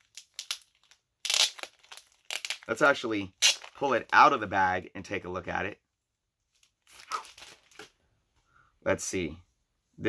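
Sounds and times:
plastic bag crinkling: 0:00.0 - 0:04.2, 0:06.8 - 0:07.9.

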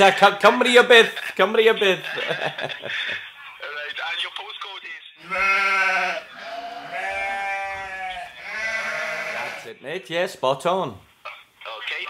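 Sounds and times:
sheep-like bleats: 0:05.2 - 0:09.8.

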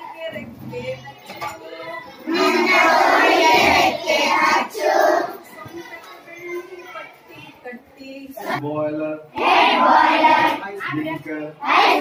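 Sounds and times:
children singing in unison: 0:02.3 - 0:05.5, 0:09.4 - 0:10.6, 0:11.6 - 0:12.0.

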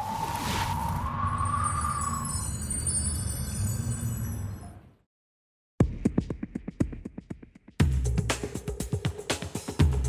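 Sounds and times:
shimmering high chime: 0:01.2 - 0:05.0.

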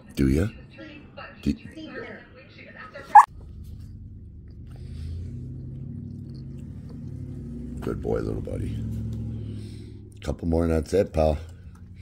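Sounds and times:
dog yipping: 0:03.1 - 0:03.3.

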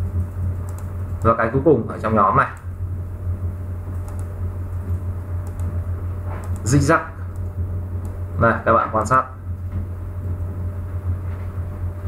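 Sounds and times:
steady low hum: 0:00.0 - 0:12.0
faint mouse clicks: 0:00.7 - 0:00.9, 0:04.0 - 0:04.3.

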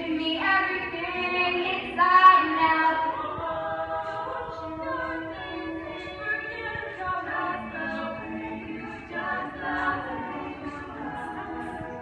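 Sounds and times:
female a cappella group singing: 0:00.0 - 0:12.0.

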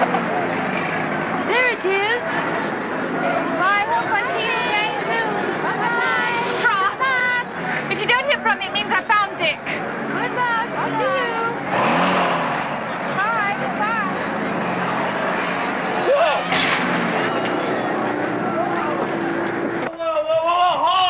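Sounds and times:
jeep engine and road noise: 0:00.0 - 0:21.0
passengers shouting and laughing: 0:01.3 - 0:11.7, 0:12.8 - 0:21.0.

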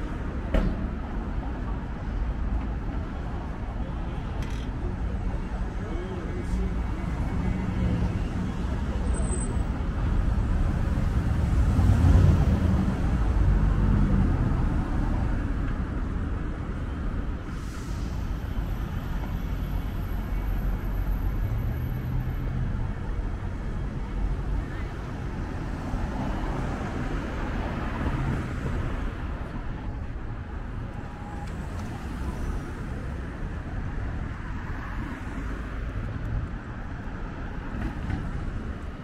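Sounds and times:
cars passing: 0:00.0 - 0:39.0.

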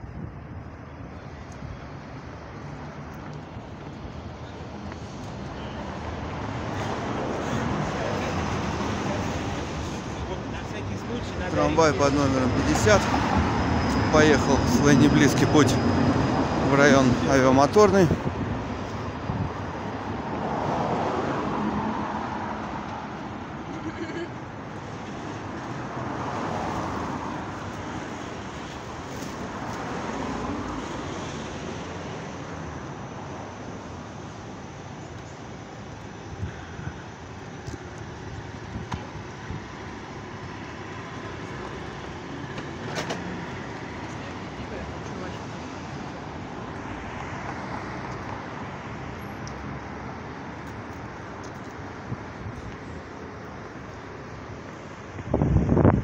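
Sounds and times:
street traffic: 0:00.0 - 0:56.0.

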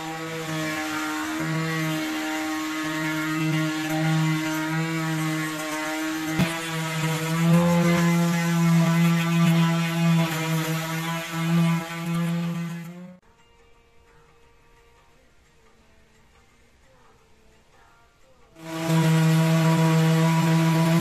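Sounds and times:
rotary tool motor whining: 0:00.0 - 0:13.2, 0:18.6 - 0:21.0
sanding drum grinding on steel: 0:00.0 - 0:13.2, 0:18.6 - 0:21.0.

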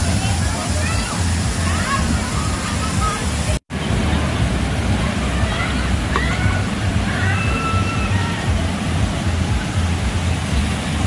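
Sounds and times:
children calling faintly: 0:00.0 - 0:11.0
water pouring and splashing: 0:00.0 - 0:11.0.

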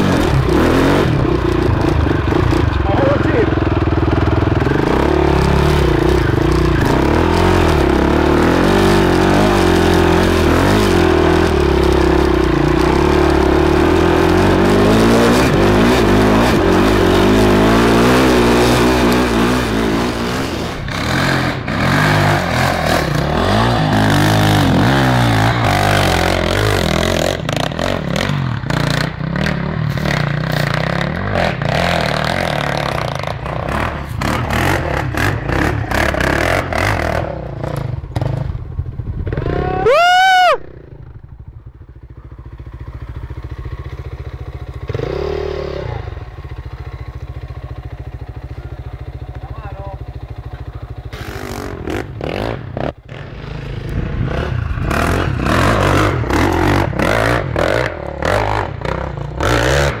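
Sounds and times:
dirt bike engine revving: 0:00.0 - 1:00.0.

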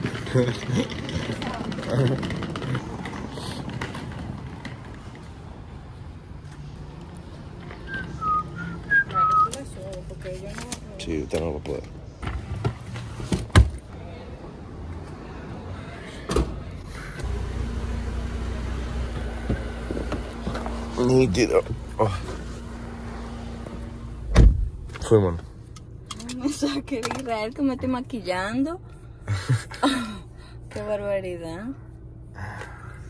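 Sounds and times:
person whistling a tune: 0:07.9 - 0:09.6
steady hum inside car: 0:16.5 - 0:33.0
car door shutting: 0:24.2 - 0:24.8.

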